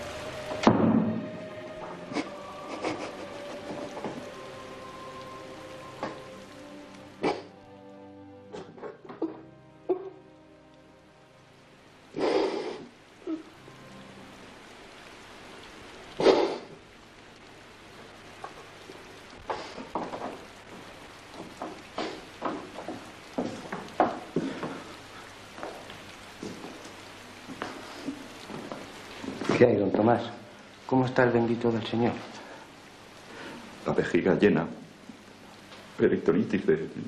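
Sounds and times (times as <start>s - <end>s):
steps and knocks on wooden floorboards: 19.8s - 24.9s, 25.6s - 27.8s, 28.4s - 29.6s.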